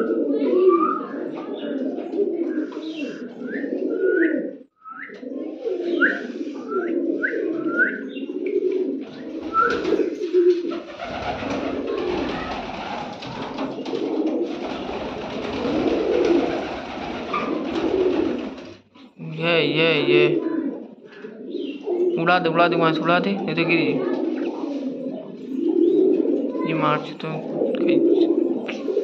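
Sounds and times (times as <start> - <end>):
pigeons cooing: 0.0 - 29.0.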